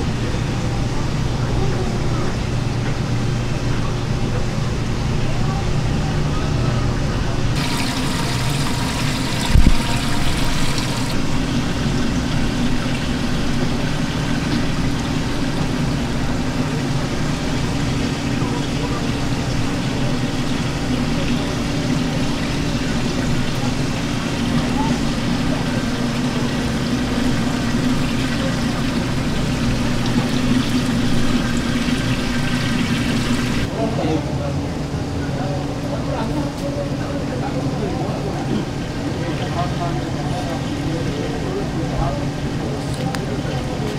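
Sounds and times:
low pump hum: 0:00.0 - 0:33.8
trickling water: 0:07.6 - 0:33.7.

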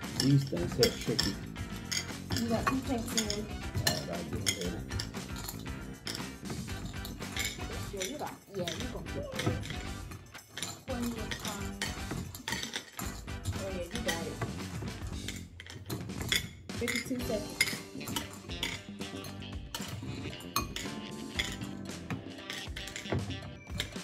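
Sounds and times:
candies clinking in glass bowl: 0:00.0 - 0:24.0.

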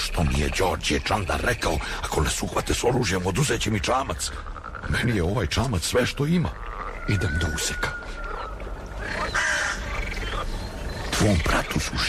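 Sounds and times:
animal calls at night: 0:03.9 - 0:12.0.

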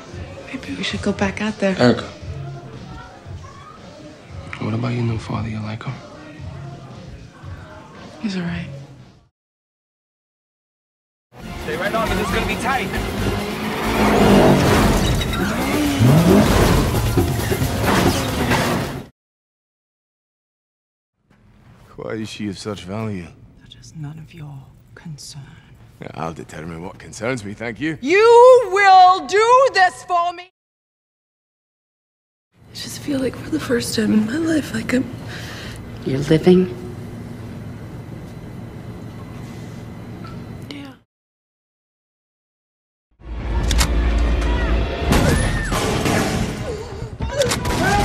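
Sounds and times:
music: 0:00.0 - 0:09.3, 0:11.3 - 0:19.1, 0:43.2 - 0:46.6
car engine revving: 0:12.5 - 0:18.8.

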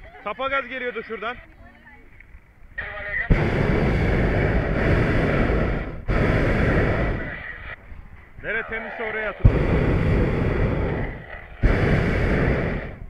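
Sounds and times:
propane burner roaring: 0:02.9 - 0:13.0.

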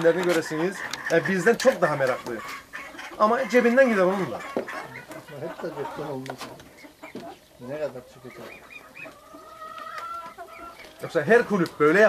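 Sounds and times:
fowl calling: 0:00.0 - 0:12.0.

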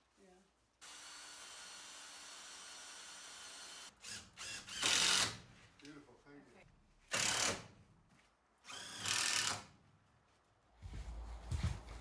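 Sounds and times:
cordless drill running: 0:00.8 - 0:05.4, 0:07.1 - 0:07.6, 0:08.7 - 0:09.6.

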